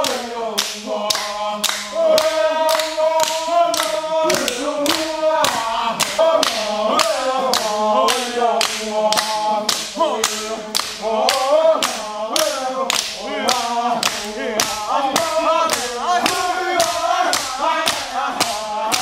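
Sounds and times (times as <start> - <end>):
group chanting in unison: 0.0 - 19.0
steady hand clapping: 0.0 - 19.0.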